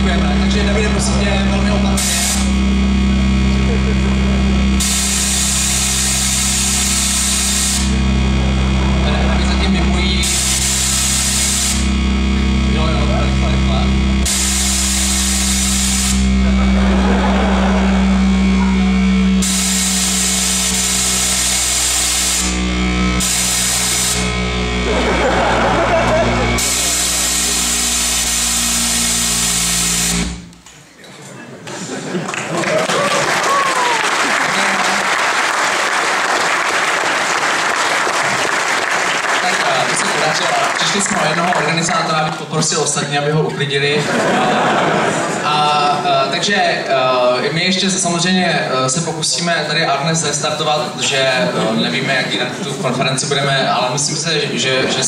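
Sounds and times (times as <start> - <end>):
distorted voice: 0.0 - 29.2, 39.4 - 44.2
low electronic drone: 0.0 - 30.8
bursts of harsh hiss: 2.0 - 2.6, 4.8 - 8.0, 10.2 - 12.0, 14.2 - 16.4, 19.3 - 24.6, 26.6 - 30.6.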